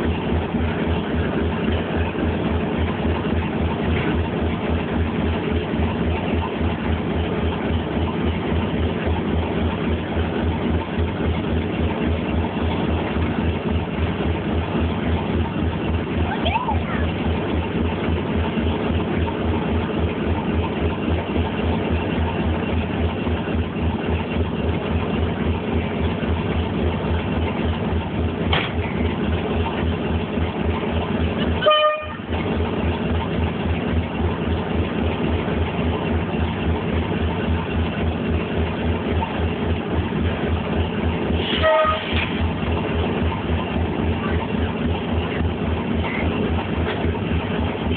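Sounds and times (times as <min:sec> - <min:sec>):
diesel locomotive engine beat: 0:00.0 - 0:47.9
locomotive horn toot: 0:31.6 - 0:32.3, 0:41.4 - 0:42.3.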